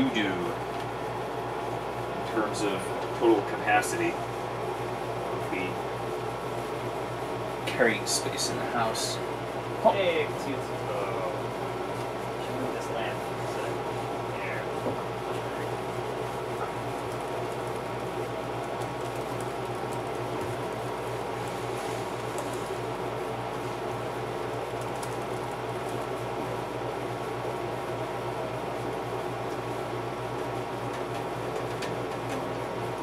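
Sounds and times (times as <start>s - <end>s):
steady machine hum: 0.0s - 33.0s.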